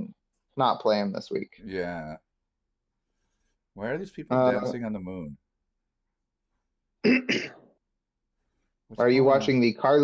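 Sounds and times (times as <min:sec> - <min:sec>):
man clearing throat: 0:07.0 - 0:07.7.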